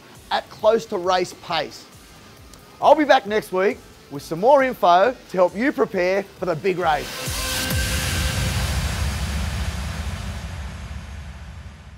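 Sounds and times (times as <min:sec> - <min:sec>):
whoosh with low rumble and hiss: 0:06.3 - 0:11.9.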